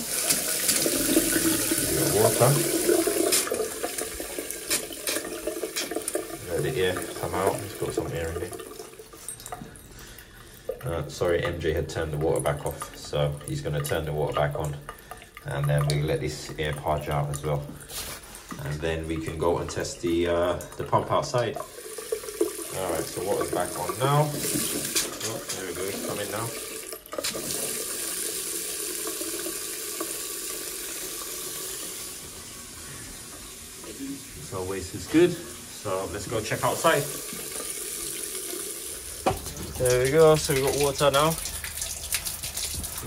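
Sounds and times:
water drips: 0.0s - 27.8s, 30.9s - 43.0s
water trickling into sink: 0.0s - 43.0s.

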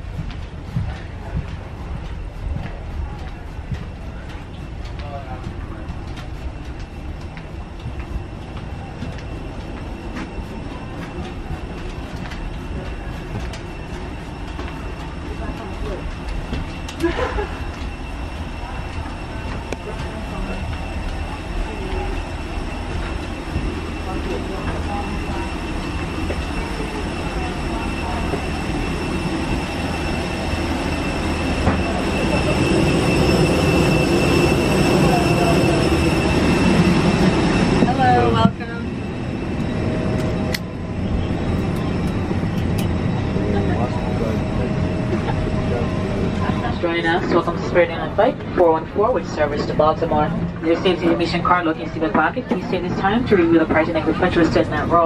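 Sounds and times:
airliner hum and high whine: 0.0s - 55.0s.

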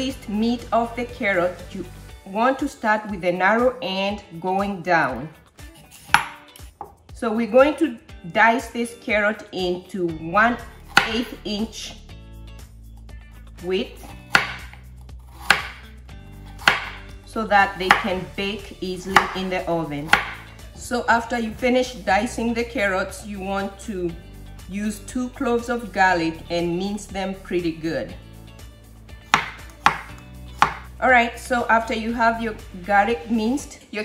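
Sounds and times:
knife chopping on wooden board: 5.8s - 7.0s, 10.9s - 11.4s, 14.0s - 17.1s, 17.8s - 18.2s, 19.1s - 20.5s, 29.3s - 30.9s.

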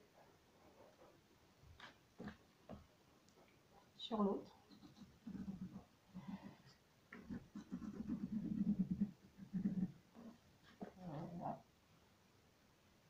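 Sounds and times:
low animal vocal sounds: 4.7s - 11.7s.

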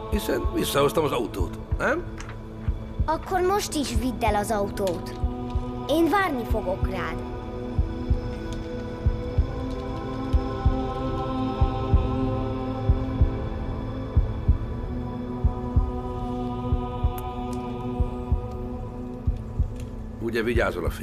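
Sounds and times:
low heartbeat-like double thump: 15.4s - 16.0s.

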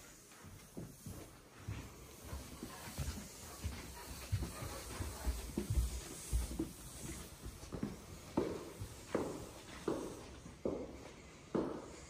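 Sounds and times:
footsteps on hard floor: 0.0s - 12.0s.

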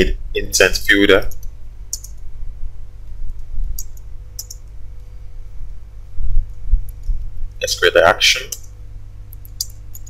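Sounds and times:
steady low hum: 0.0s - 10.0s
computer keyboard keystrokes: 1.3s - 2.2s, 3.8s - 4.7s, 9.3s - 10.0s.

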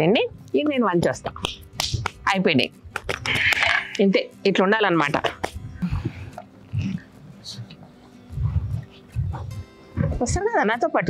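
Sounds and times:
people talking: 0.0s - 1.6s, 3.9s - 5.5s, 10.0s - 11.0s.

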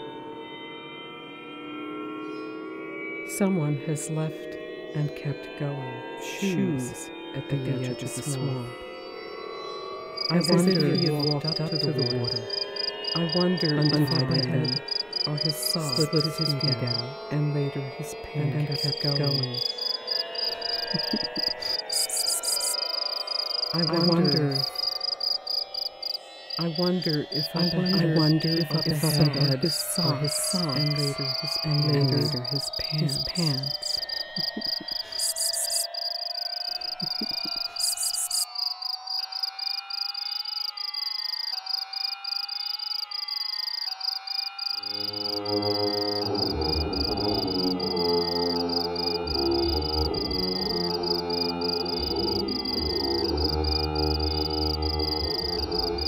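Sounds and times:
electronic drone tones: 0.0s - 56.0s
high chirping electronic pulse: 10.2s - 56.0s
electronic music: 13.1s - 18.0s
high fast-pulsing tone: 44.6s - 56.0s.

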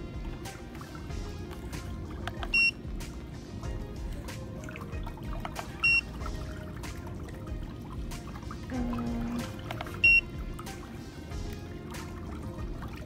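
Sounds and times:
background music: 0.0s - 13.0s
short electronic beeps: 2.5s - 2.8s, 10.0s - 10.3s.

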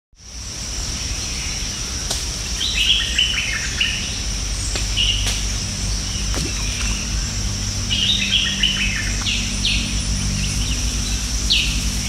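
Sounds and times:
high-pitched insect drone: 0.2s - 12.0s
birds chirping: 2.6s - 12.0s
low rumble: 4.1s - 12.0s.

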